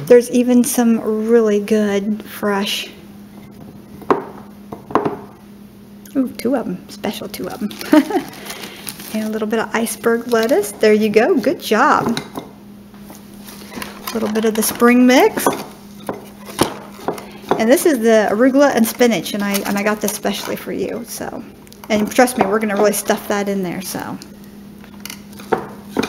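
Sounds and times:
steady low hum: 0.0 - 26.0
lettuce and packaging rustling: 7.3 - 11.7, 13.0 - 23.4.

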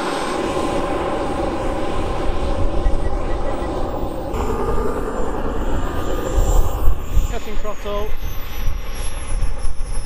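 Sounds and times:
jet turbine whine: 0.0 - 10.0
low rumble: 1.1 - 10.0.

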